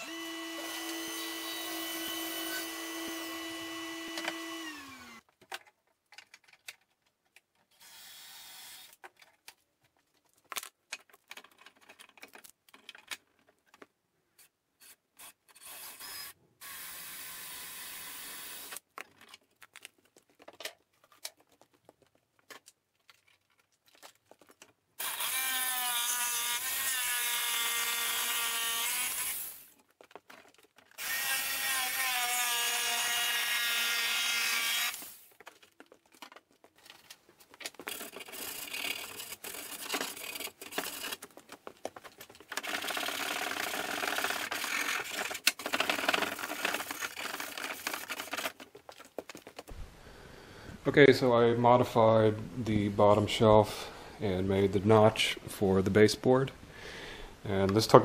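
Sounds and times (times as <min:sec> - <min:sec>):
drill-driver driving screws: 0:00.0 - 0:05.3, 0:07.7 - 0:09.0, 0:14.8 - 0:18.8, 0:25.0 - 0:29.7, 0:30.9 - 0:35.3, 0:42.5 - 0:48.6
rough uneven tool noise: 0:25.0 - 0:49.8.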